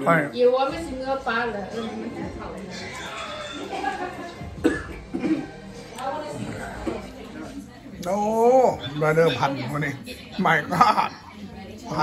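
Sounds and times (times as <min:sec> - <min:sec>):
man coughing: 0:04.6 - 0:05.5.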